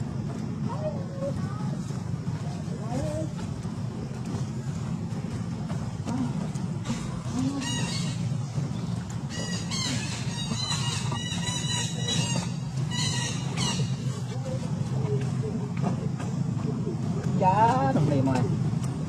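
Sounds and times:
steady low hum: 0.0s - 19.0s
high-pitched chirping animal calls: 9.3s - 14.1s.

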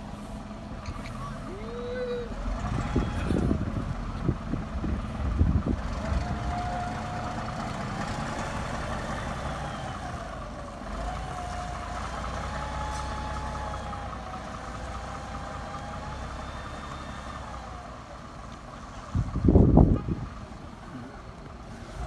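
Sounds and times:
bus diesel engine pulling away: 0.0s - 22.0s.

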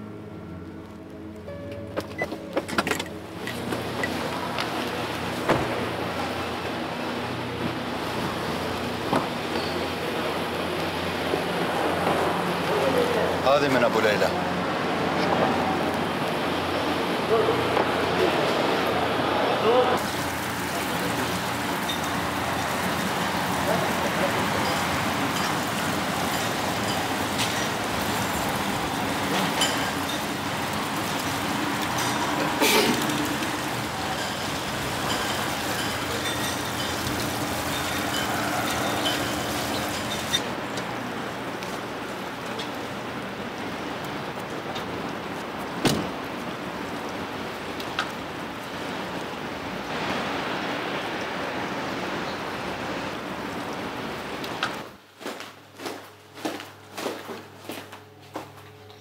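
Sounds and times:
traffic noise: 0.0s - 55.2s.

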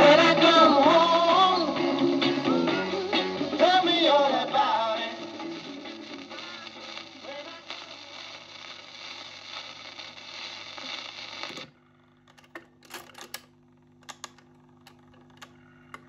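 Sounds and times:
record playing through speaker: 0.0s - 16.0s
turntable motor hum: 9.8s - 16.0s
record changer clicking and clunking: 11.5s - 11.7s, 12.3s - 16.0s.

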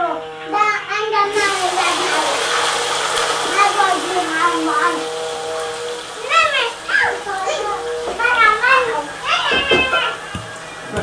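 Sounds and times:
children calling out and playing: 6.0s - 10.4s.

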